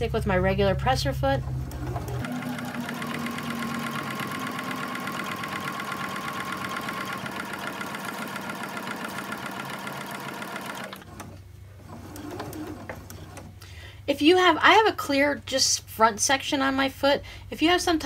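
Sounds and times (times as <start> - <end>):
electric sewing machine stitching: 1.4 - 13.6.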